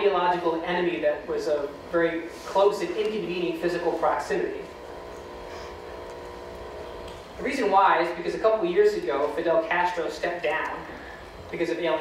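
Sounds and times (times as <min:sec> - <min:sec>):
machine room hum: 0:00.0 - 0:12.0.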